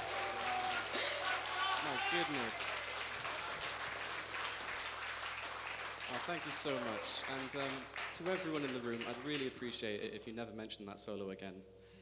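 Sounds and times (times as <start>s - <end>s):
audience applauding: 0.0s - 9.9s
low electrical hum: 0.0s - 12.0s.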